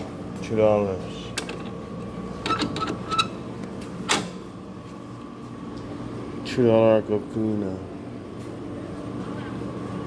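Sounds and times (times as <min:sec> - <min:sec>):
vending machine hum: 0:00.0 - 0:10.0.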